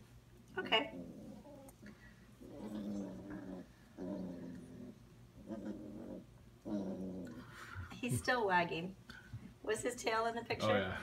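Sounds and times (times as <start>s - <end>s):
puppy growling: 0.7s - 7.7s.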